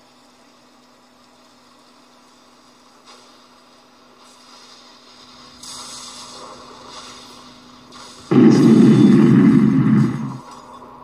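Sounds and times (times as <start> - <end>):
faint steady hiss: 0.0 - 11.0
low constant hum: 0.0 - 11.0.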